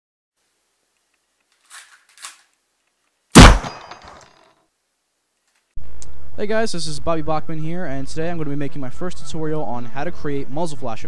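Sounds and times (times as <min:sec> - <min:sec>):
gun handling rustle: 0:01.0 - 0:04.5
pistol shot: 0:03.4 - 0:04.2.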